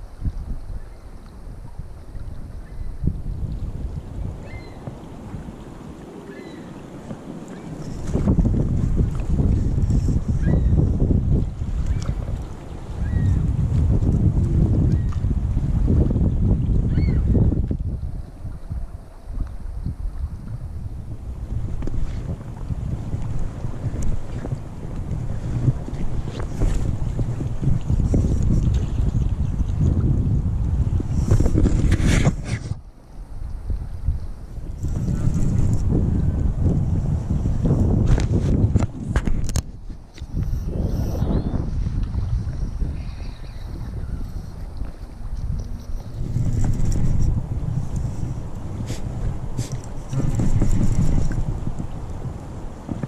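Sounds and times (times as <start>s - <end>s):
wind buffeting microphone: 0.0s - 53.0s
faint creek rushing: 4.4s - 8.0s.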